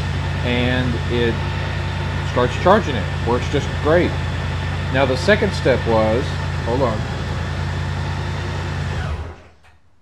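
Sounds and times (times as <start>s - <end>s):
motorcycle engine idling: 0.0s - 9.6s.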